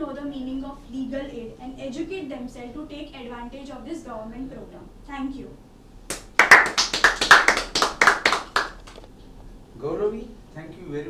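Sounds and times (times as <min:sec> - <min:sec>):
hands clapping: 0:06.1 - 0:09.1.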